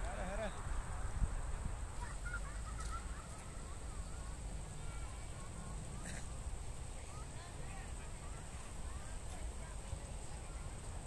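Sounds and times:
low wind rumble on microphone: 0.0 - 11.0.

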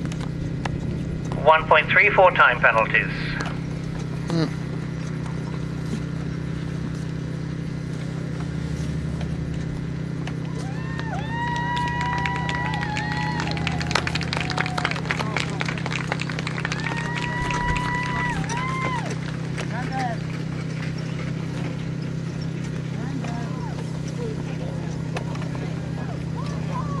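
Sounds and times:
steady low hum: 0.0 - 27.0
horse hoofbeats on grass: 3.4 - 27.0.

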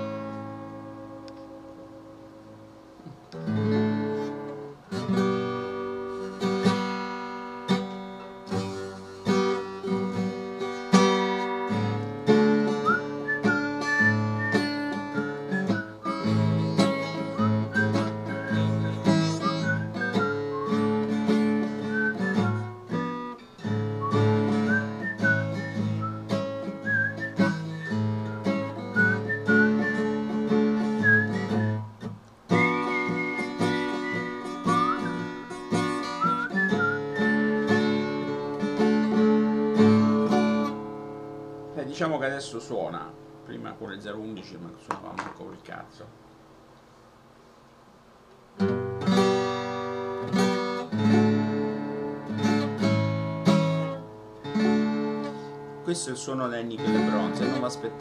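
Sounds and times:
acoustic guitar picking: 0.0 - 47.2, 48.0 - 58.0
person whistling a melody: 12.6 - 22.7, 23.9 - 31.9, 32.5 - 38.4.

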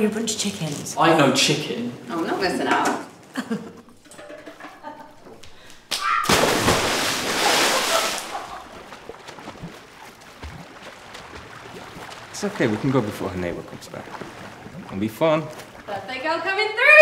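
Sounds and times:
splash into swimming pool: 5.9 - 15.9.

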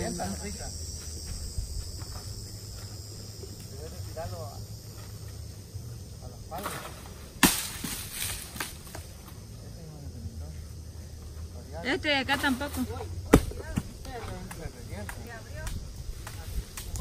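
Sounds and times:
insects droning: 0.0 - 17.0
sharp crack: 6.5 - 9.1
light crackles: 14.0 - 17.0.

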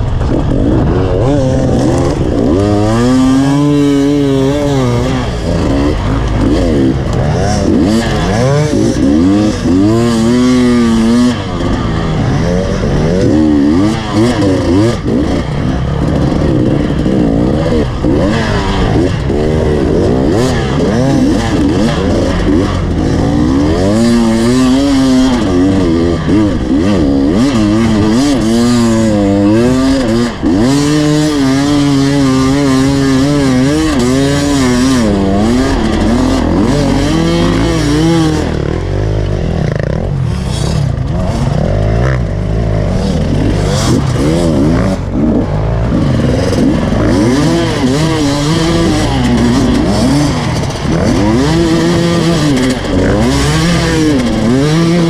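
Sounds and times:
dirt bike engine revving: 0.0 - 55.0
wind and ground noise: 0.0 - 55.0.

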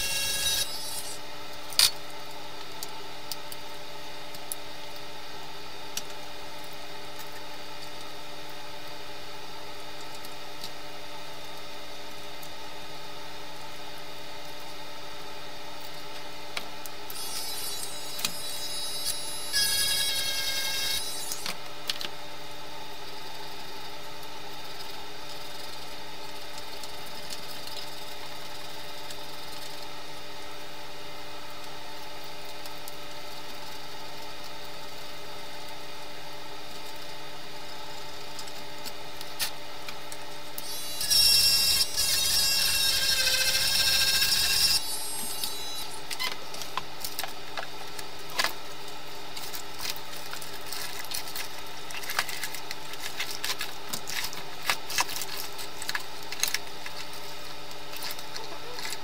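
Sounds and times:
small electric motor whirring: 0.0 - 1.2, 17.1 - 21.5, 40.6 - 46.3
steady electrical hum: 0.0 - 59.0.

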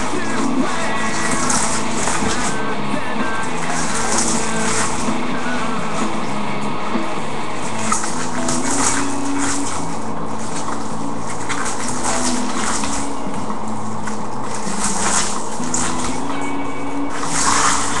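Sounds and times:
background music: 0.0 - 18.0
foil wrappers crackling and tearing: 3.3 - 5.7, 7.6 - 18.0.

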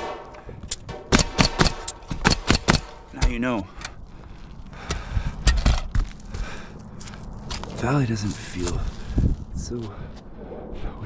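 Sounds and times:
nails hammered into metal: 0.0 - 3.4.

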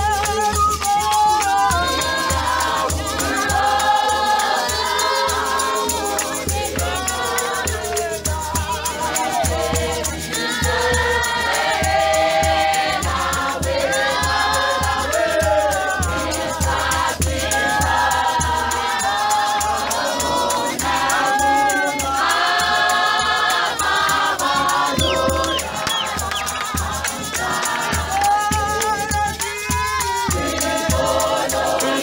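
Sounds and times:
congregation singing a hymn: 0.0 - 32.0
steady low beat: 23.2 - 29.3.

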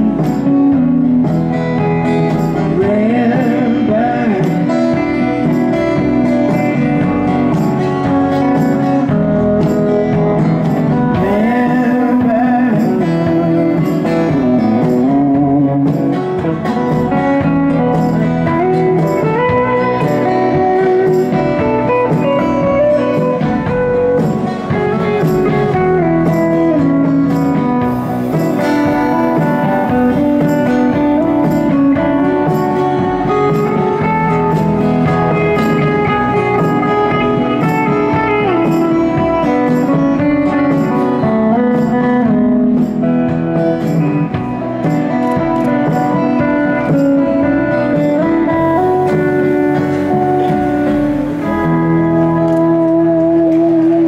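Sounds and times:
acoustic guitar: 0.0 - 54.0
electric guitar lead: 0.0 - 54.0
upright bass: 0.0 - 54.0.

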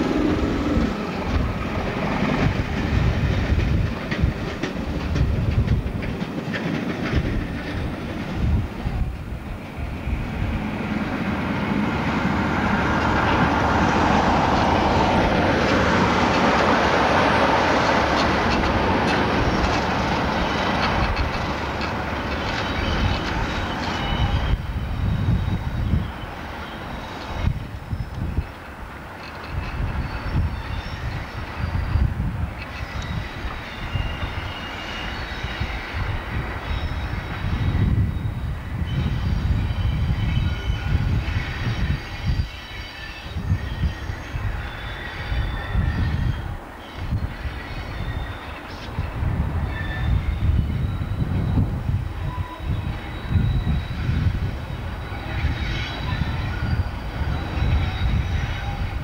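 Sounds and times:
diesel locomotive rumble: 0.0 - 42.6, 43.2 - 59.0
high-pitched wheel squeal: 19.4 - 28.5, 29.3 - 59.0.

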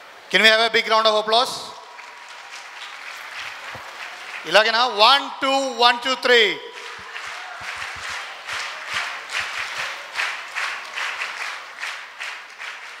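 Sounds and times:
audience applauding: 1.8 - 5.0, 6.3 - 13.0.

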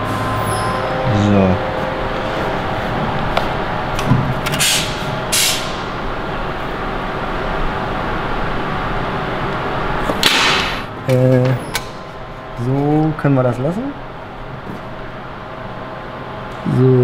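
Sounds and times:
workshop background noise: 0.0 - 7.2, 9.7 - 15.4.

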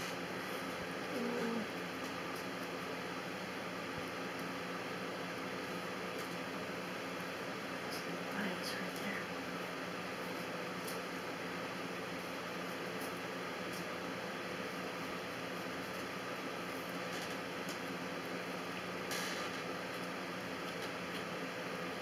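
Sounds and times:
background hiss and hum: 0.0 - 22.0.

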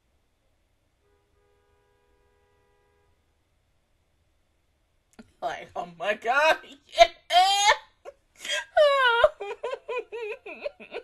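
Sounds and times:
high-pitched voice crying: 6.4 - 11.0.

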